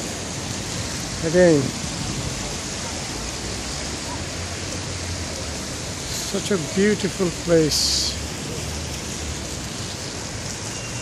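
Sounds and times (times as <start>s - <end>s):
city traffic hum: 0.0s - 11.0s
fountain water splashing: 0.0s - 11.0s.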